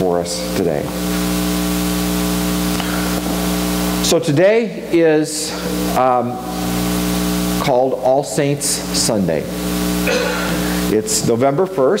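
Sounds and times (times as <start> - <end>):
low droning tones: 0.0 - 11.2
steady hiss: 0.0 - 11.9.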